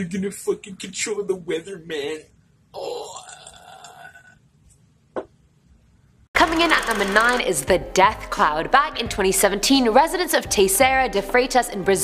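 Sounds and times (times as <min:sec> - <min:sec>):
man groaning: 0:02.8 - 0:04.4.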